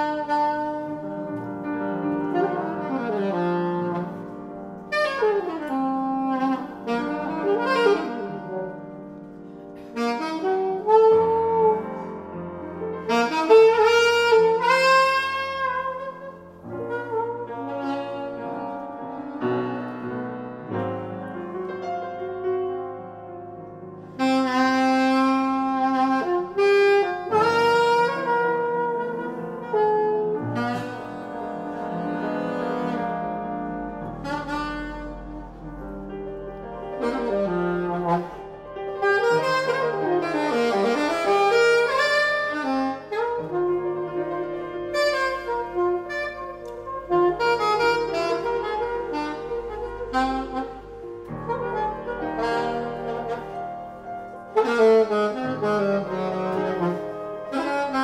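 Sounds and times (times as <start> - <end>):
alto saxophone improvising: 0.0 - 12.2, 13.0 - 19.5, 24.1 - 58.0
grand piano: 0.0 - 58.0.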